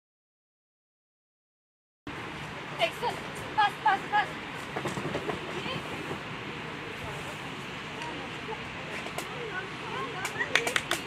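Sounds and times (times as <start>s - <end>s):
hollow rumble of fabric tunnel: 2.2s - 10.5s.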